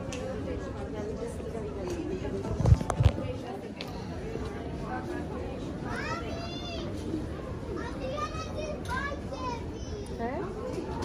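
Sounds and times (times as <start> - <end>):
children talking and calling out: 3.7 - 11.0.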